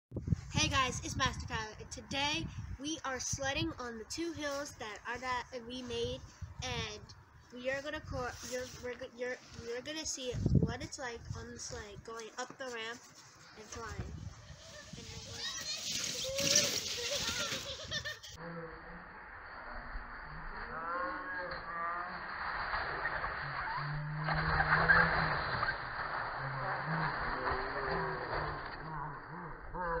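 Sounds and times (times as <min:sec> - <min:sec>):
plastic sled scraping over snow: 0:12.7 - 0:18.2.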